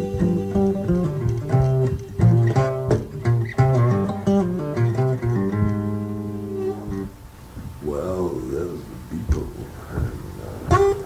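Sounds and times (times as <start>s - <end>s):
bass line: 0.0s - 11.0s
plucked guitar notes: 0.0s - 11.0s.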